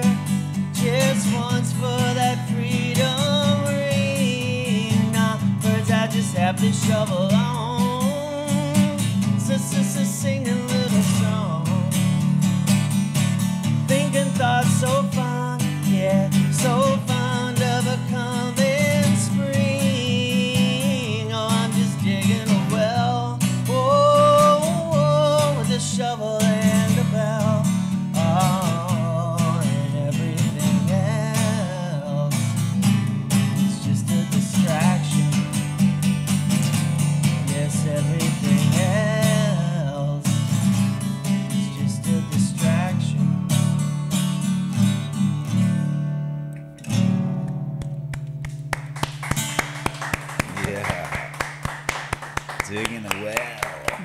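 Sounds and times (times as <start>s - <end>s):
man singing: 0.0s - 12.3s, 13.7s - 32.8s, 33.5s - 35.6s, 37.4s - 40.7s, 41.3s - 43.4s, 52.6s - 54.0s
acoustic guitar strumming: 0.0s - 54.0s
hand clapping: 47.4s - 54.0s.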